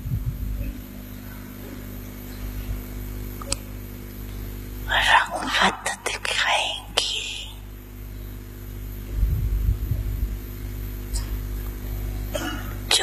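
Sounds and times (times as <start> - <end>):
steady electrical hum: 0.0 - 13.0
woman speaking softly: 4.9 - 7.7.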